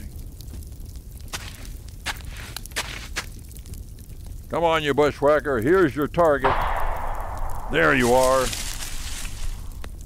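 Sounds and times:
slow uneven footsteps: 0:00.4 - 0:03.9, 0:06.9 - 0:10.0
low steady hum: 0:06.4 - 0:10.0.

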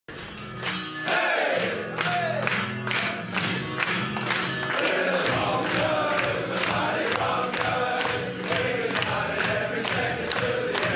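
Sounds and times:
sharp rhythmic beats: 0:00.2 - 0:10.9
group of men singing: 0:04.7 - 0:10.9.

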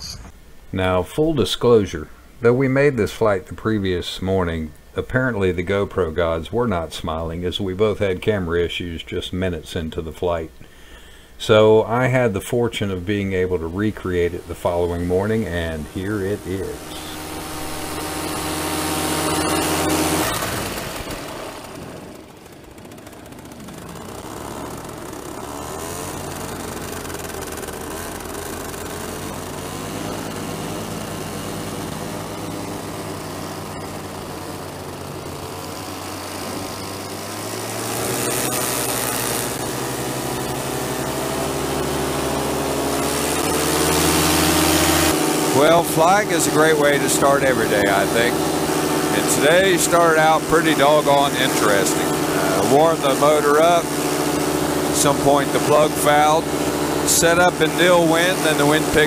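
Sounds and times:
paramotor engine and propeller: 0:12.9 - 0:59.0.

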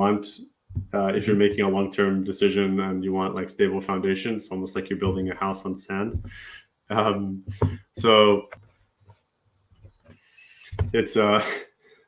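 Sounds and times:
man speaking: 0:00.0 - 0:08.6, 0:10.5 - 0:11.7
soft in-breath: 0:06.2 - 0:06.7.

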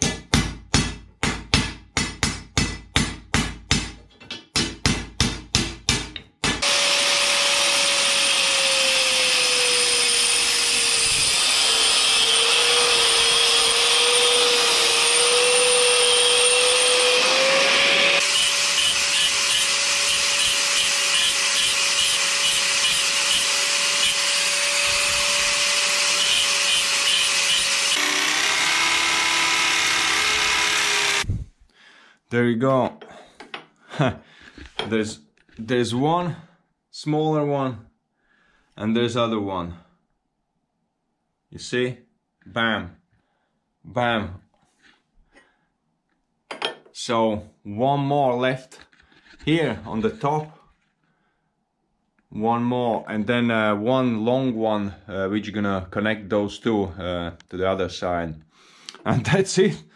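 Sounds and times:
hammer beating steel tube: 0:00.0 - 0:06.8
angle grinder cutting steel: 0:06.4 - 0:31.3
power drill: 0:06.6 - 0:31.3.

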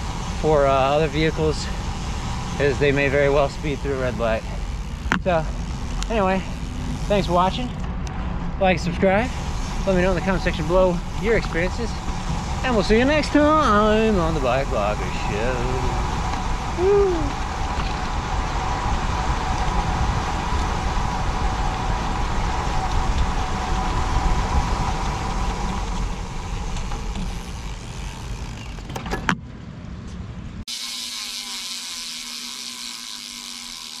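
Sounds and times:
steady hiss: 0:00.0 - 0:07.8, 0:08.7 - 0:28.4
low hum: 0:00.0 - 0:28.9
bicycle tyre road noise: 0:00.0 - 0:34.0
sharp clicks: 0:05.0 - 0:06.2
wind on microphone: 0:09.3 - 0:27.5.

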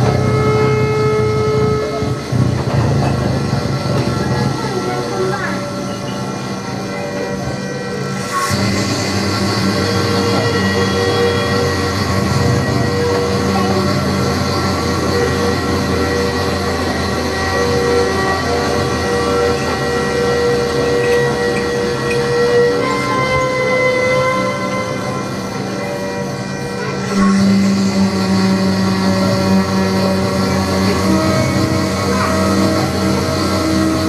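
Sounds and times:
trumpet violin and electronics drone: 0:00.0 - 0:34.0.

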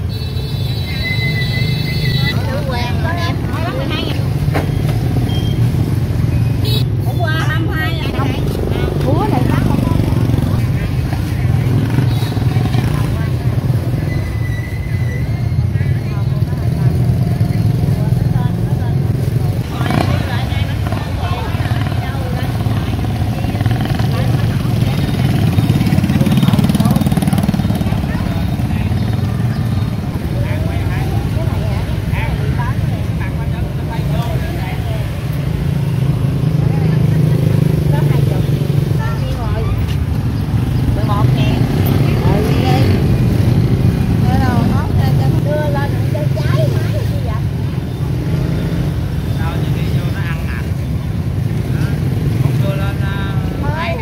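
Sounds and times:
motorbike engines passing: 0:00.0 - 0:54.0
chatter of voices: 0:01.7 - 0:54.0.

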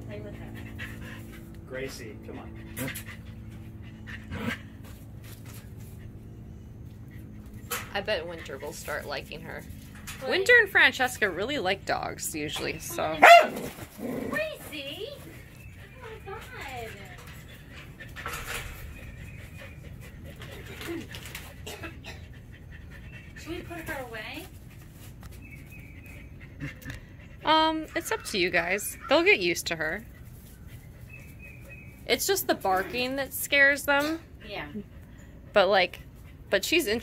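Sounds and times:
animal panting: 0:00.0 - 0:37.0
steady low hum: 0:00.0 - 0:37.0.

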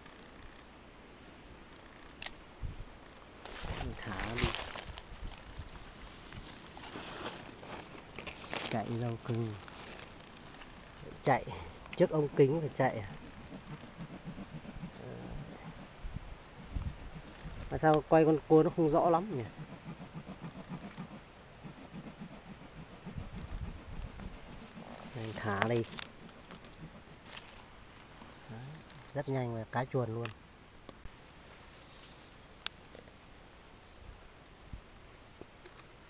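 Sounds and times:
faint hiss: 0:00.0 - 0:36.0
dry leaves rustling: 0:03.2 - 0:15.1, 0:23.1 - 0:29.2.

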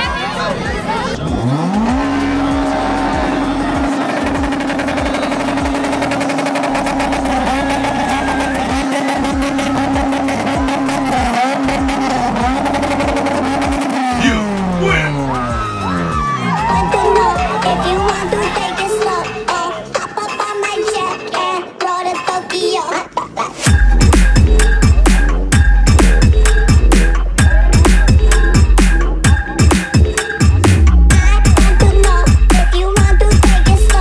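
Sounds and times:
car engine revving: 0:00.0 - 0:19.5
crowd noise: 0:00.0 - 0:34.0
music with a beat: 0:01.2 - 0:34.0.

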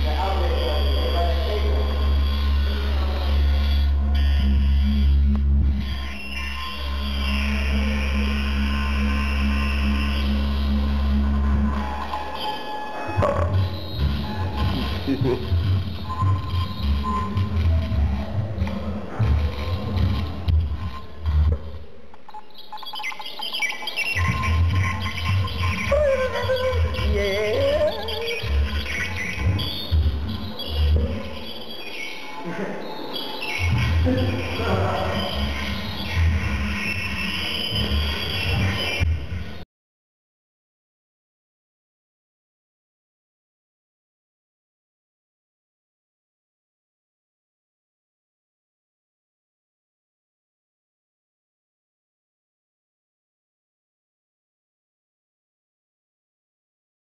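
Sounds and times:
deep pulsing bass: 0:00.0 - 0:12.1, 0:13.2 - 0:21.6, 0:24.2 - 0:31.4, 0:33.6 - 0:39.5
wavering wobbling tone: 0:00.0 - 0:15.6, 0:22.8 - 0:39.1
warbling gliding squeals: 0:22.8 - 0:39.1.

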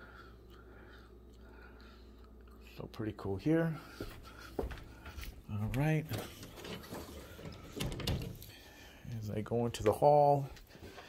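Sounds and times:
footsteps on carpet: 0:03.8 - 0:06.0.

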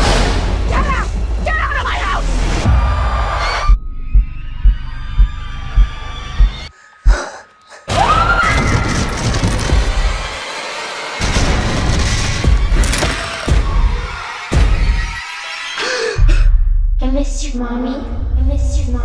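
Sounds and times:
dense loud trailer music: 0:00.0 - 0:06.7, 0:09.4 - 0:19.0
deep heartbeat-like booms: 0:02.8 - 0:07.2.

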